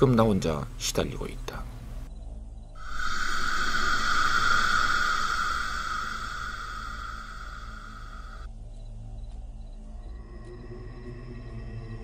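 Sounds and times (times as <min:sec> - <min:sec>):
faint low drone: 0:02.0 - 0:12.0
buzzing hiss: 0:02.8 - 0:08.5.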